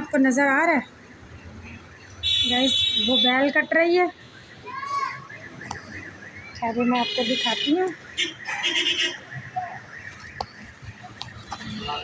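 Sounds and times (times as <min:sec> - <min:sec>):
distant street voices: 0:00.0 - 0:12.0.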